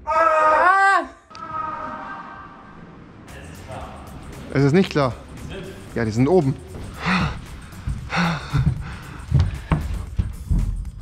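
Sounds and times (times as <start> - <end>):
person gasping: 6.9 - 9.8.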